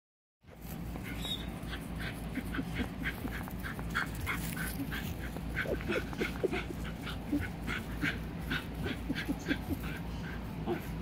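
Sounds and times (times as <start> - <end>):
steady low rumble: 0.5 - 11.0
puppies whimpering and yipping: 0.8 - 11.0.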